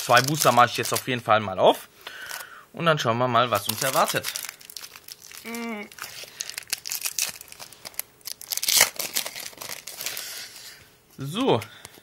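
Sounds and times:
wrapper crinkling as torn open: 0.0 - 1.2, 3.6 - 10.6.

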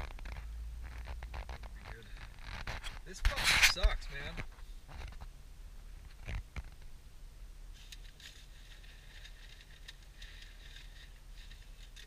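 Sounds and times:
camera handling rubbing: 0.2 - 5.3.

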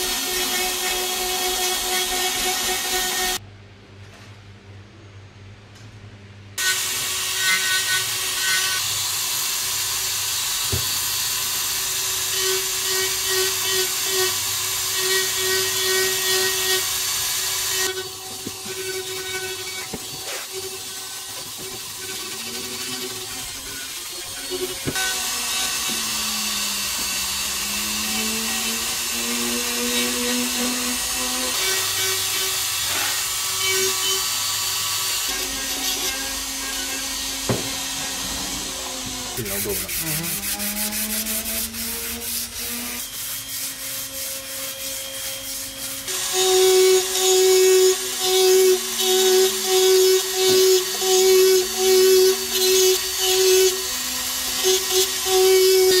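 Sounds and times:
bit rasping into wood: 39.0 - 43.1.

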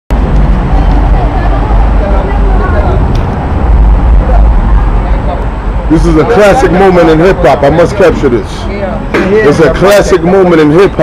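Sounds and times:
loud steady low rumble: 0.1 - 10.6
faint voices talking: 0.1 - 11.0.

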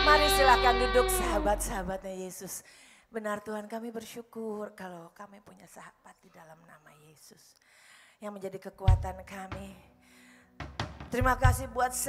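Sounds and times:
woman whispering a prayer: 4.8 - 7.6.

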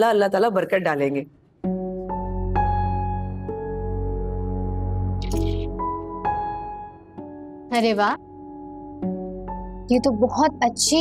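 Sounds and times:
soft background score: 0.0 - 11.0.

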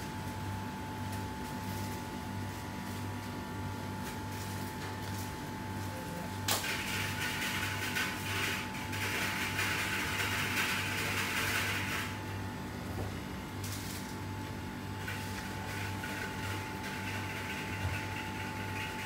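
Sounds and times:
machine hum: 0.0 - 19.0.

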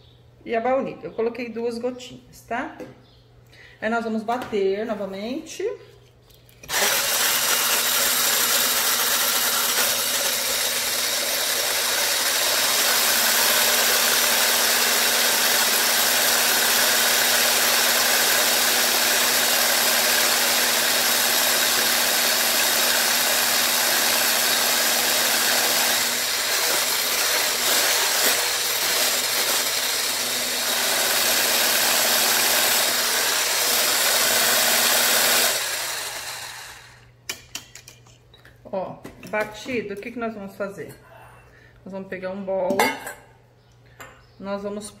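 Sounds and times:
electric hand blender whisking: 6.7 - 37.0.

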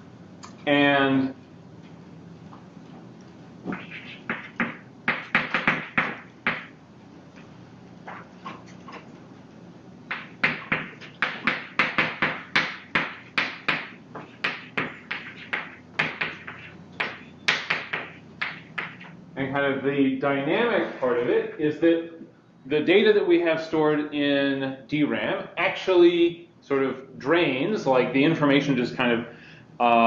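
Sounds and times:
chalk tapping and scratching on blackboard: 3.7 - 6.7, 10.1 - 19.2.

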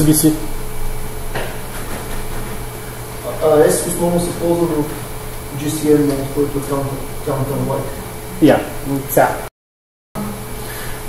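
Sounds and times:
room hum and hiss: 0.0 - 9.5, 10.2 - 11.0.

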